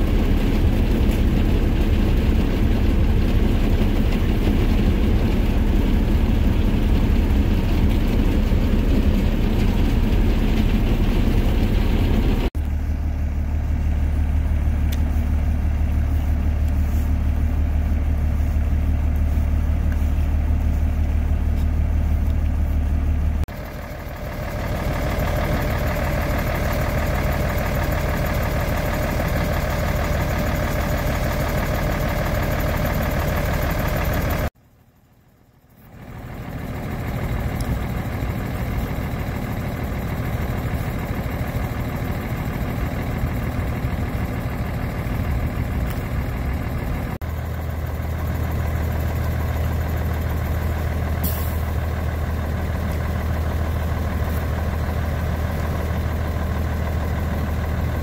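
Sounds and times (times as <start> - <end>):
large diesel engine idling: 0.0 - 58.0.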